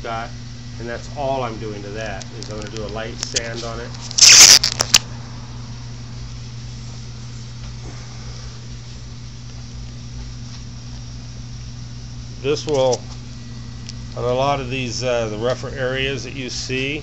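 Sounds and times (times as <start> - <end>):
steady low hum: 0.0 - 17.0
microphone handling rustling: 2.3 - 5.0.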